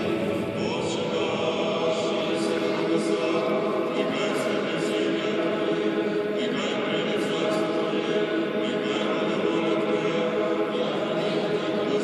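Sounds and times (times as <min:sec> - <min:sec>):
choir chanting: 0:00.0 - 0:11.2.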